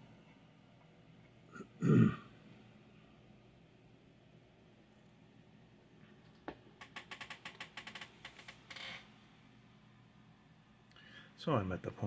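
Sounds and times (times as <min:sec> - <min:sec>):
light clicks and taps: 0:06.0 - 0:07.6.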